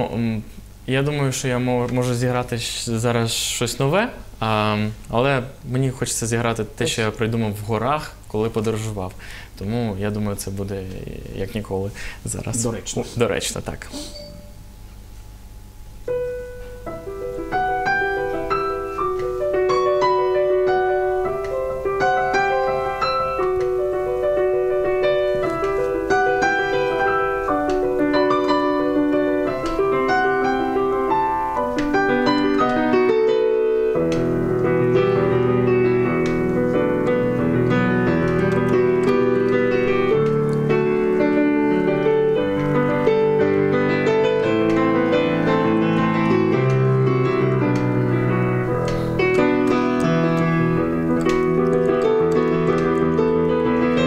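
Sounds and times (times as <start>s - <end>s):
digital piano melody: 12.4s - 14.9s, 15.8s - 54.0s.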